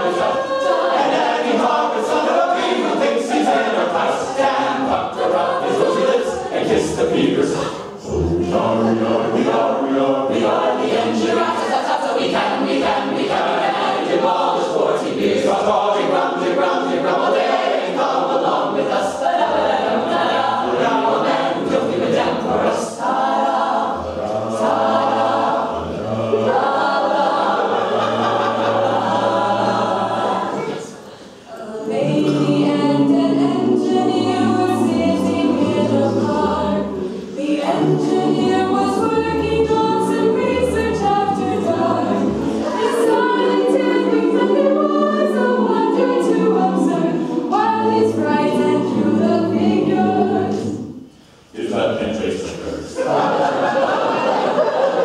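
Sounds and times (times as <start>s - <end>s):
mixed a cappella group singing: 0.0s - 55.0s.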